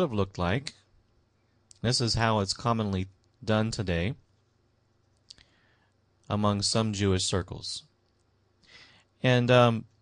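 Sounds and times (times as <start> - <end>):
person speaking: 0.0 - 0.9, 1.7 - 4.2, 6.2 - 7.9
faint low hum: 0.0 - 10.0.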